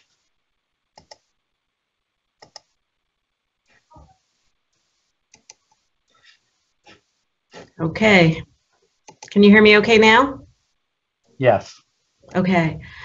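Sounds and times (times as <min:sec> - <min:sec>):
faint computer mouse clicks: 0:01.0 - 0:01.3, 0:02.4 - 0:02.7, 0:05.3 - 0:05.8, 0:09.1 - 0:09.4.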